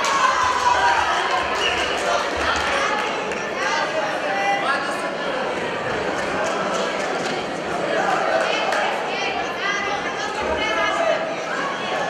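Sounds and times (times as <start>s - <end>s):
voices calling out in hall: 0.0s - 12.0s.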